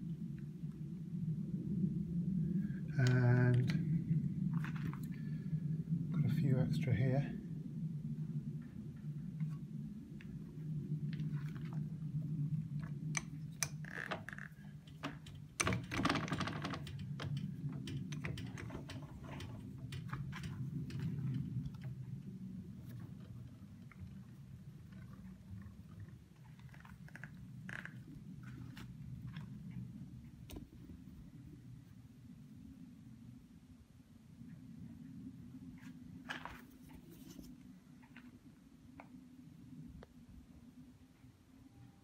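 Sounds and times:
steady low hum: 0:00.0 - 0:42.0.

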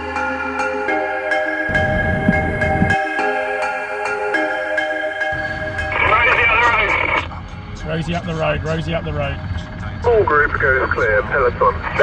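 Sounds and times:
car cabin road rumble: 0:01.7 - 0:03.0, 0:05.4 - 0:12.0
voice through two-way radio: 0:05.9 - 0:09.5.

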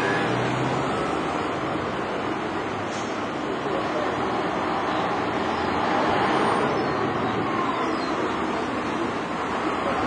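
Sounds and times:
bus diesel engine passing: 0:00.0 - 0:10.0
street traffic: 0:00.0 - 0:10.0.

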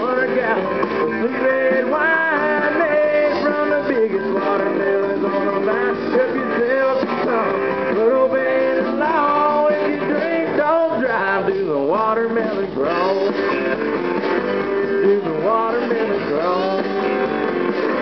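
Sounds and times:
country band playing: 0:00.0 - 0:18.0
sliding bending guitar notes: 0:00.0 - 0:18.0.

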